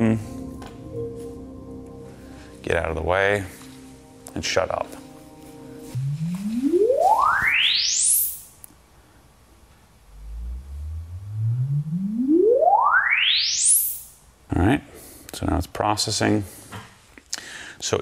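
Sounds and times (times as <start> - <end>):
cluster of steady tones: 4.9 - 8.0
rising tone sweep: 5.8 - 8.5, 10.0 - 14.2.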